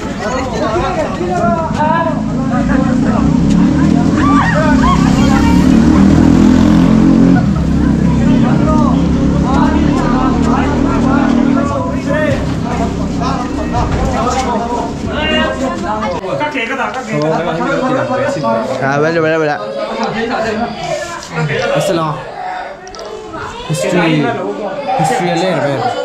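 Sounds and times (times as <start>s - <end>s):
motor vehicle engine running: 1.2s - 15.8s
people calling out: 3.2s - 13.8s.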